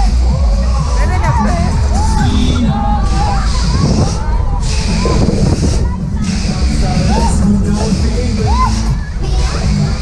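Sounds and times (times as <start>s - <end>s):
fairground ride rumble: 0.0s - 10.0s
riders' voices and shouts: 0.0s - 10.0s
air rushing over microphone: 0.8s - 10.0s.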